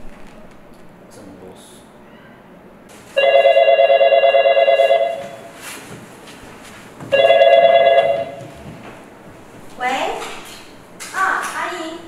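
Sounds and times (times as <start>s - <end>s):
warbling telephone ring: 3.2s - 5.4s, 7.2s - 8.4s.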